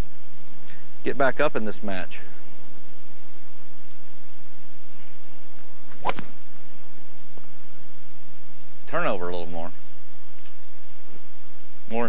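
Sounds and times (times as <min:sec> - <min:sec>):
golf club striking ball: 0:05.9 - 0:06.5.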